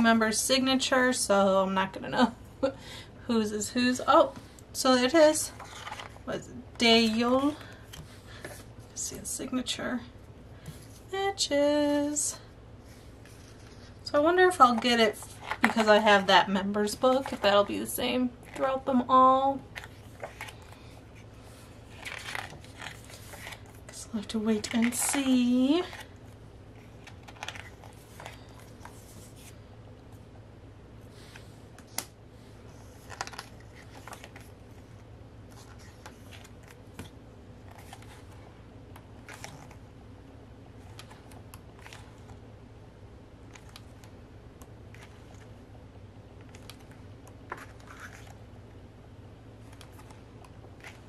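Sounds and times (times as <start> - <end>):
paper pages rustling: 5.5 - 6.3, 14.7 - 16.0, 19.7 - 24.0, 26.8 - 29.6, 32.7 - 38.4, 39.2 - 39.8, 40.8 - 42.4, 46.4 - 48.4, 49.6 - 51.0
paper page turning: 21.9 - 23.8, 26.8 - 29.6, 32.9 - 34.5
small clicks of pages: 46.4 - 48.4.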